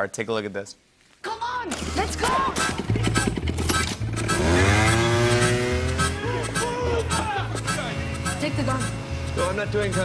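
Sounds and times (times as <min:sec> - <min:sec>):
motor scooter engine revving: 0:01.8 - 0:09.4
film score with pulsing bass: 0:02.0 - 0:10.0.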